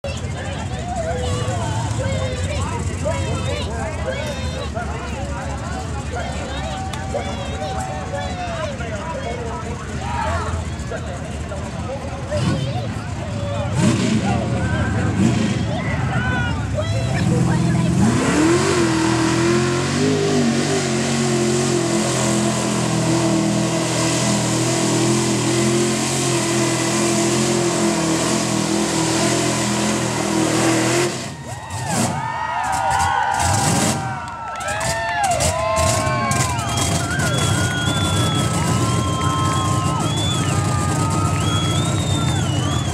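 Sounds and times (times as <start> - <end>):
voices: 0.0 - 23.8
truck churning through mud: 0.0 - 42.9
truck engine revving: 0.0 - 42.9.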